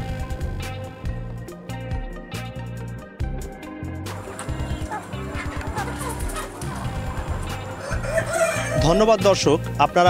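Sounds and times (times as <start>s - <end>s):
background music: 0.0s - 10.0s
chickens clucking: 4.1s - 9.1s.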